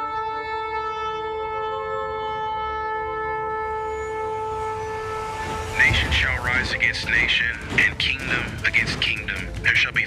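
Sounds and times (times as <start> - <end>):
long horn blast: 0.0 - 8.0
low rumble: 4.3 - 9.9.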